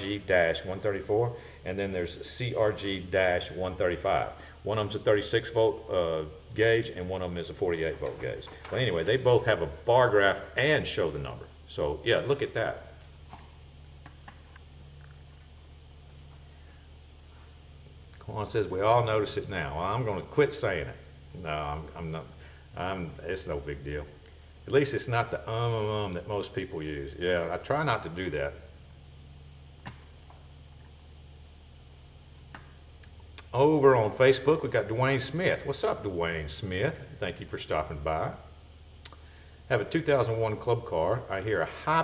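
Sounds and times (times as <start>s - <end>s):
low electrical hum: 0.0s - 42.0s.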